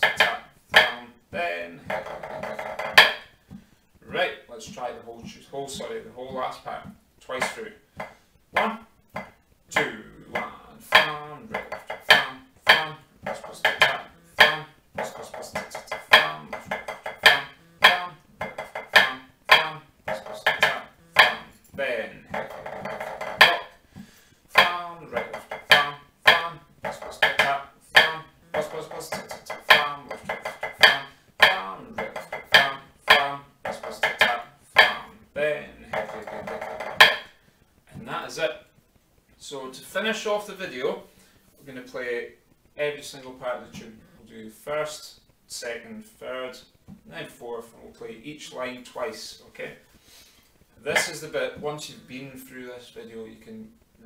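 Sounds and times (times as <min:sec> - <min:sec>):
drumsticks on practice pad: 0:00.0 - 0:38.1, 0:50.9 - 0:52.1.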